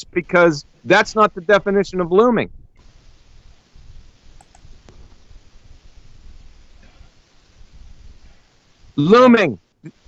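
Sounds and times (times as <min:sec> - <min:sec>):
microphone hiss and hum: 0:00.0 - 0:10.0
faint computer mouse clicks: 0:04.4 - 0:05.0.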